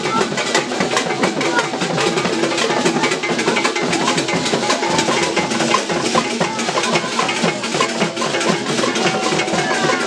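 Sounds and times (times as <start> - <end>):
drums playing fast rhythm: 0.0 - 10.0.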